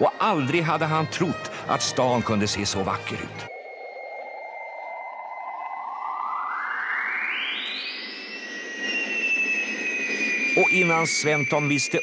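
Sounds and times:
hissing sweep rising in pitch: 1.0s - 12.0s
high electronic tone: 6.7s - 12.0s.

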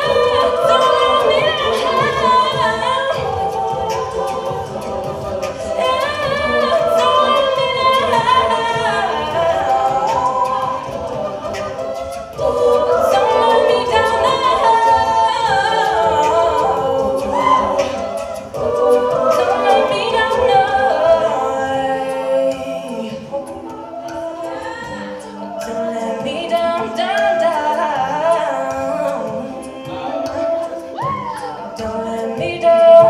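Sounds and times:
vocal percussion beat: 0.0s - 33.0s
women singing in harmony: 0.0s - 33.0s.

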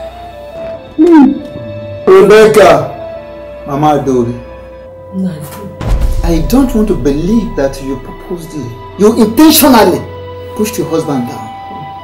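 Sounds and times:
film background music: 0.0s - 12.0s.

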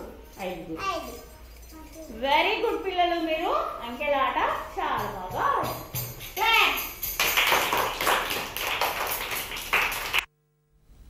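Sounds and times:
noisy classroom: 0.0s - 10.3s
taps and claps: 5.0s - 10.3s.

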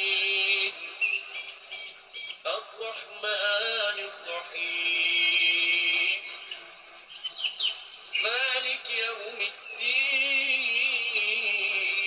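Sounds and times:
person singing chant: 0.0s - 7.1s, 8.1s - 12.0s.

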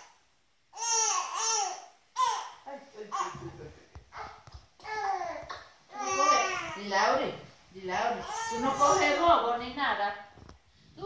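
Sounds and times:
baby squealing babbles: 0.8s - 2.6s, 4.1s - 6.8s, 8.2s - 9.2s.

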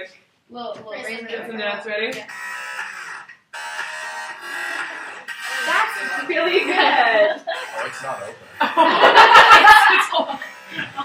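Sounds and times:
voices: 5.5s - 8.4s.

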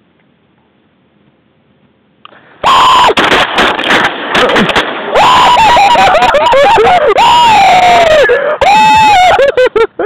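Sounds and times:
faint marsh background: 0.0s - 10.0s
shotgun blasts: 3.0s - 5.2s
loud held cry: 5.1s - 9.6s.

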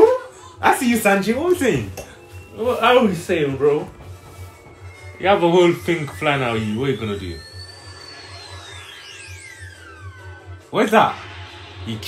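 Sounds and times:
quiet music: 0.0s - 12.0s
falling whistle of a projectile: 4.9s - 11.6s.

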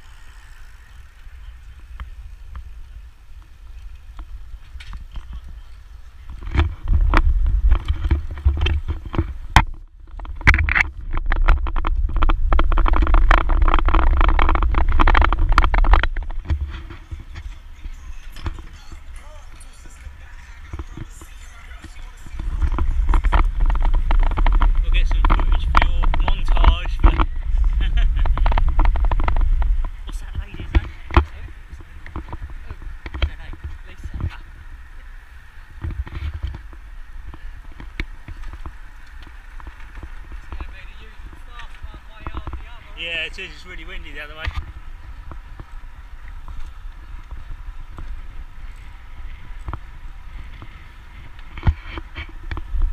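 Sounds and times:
road and bike noise: 0.0s - 52.9s
wind buffeting microphone: 0.0s - 52.9s.

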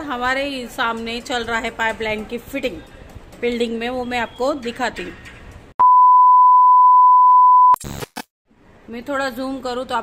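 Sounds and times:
electronic beep: 5.8s - 7.8s.

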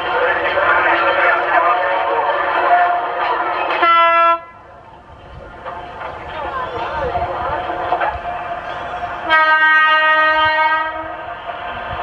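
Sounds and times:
voices talking: 4.7s - 9.2s.

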